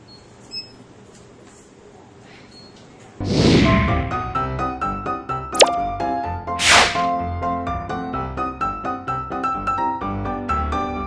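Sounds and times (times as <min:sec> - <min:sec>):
cartoon pop sound effect: 0:05.6 - 0:05.8
whoosh: 0:06.6 - 0:07.1.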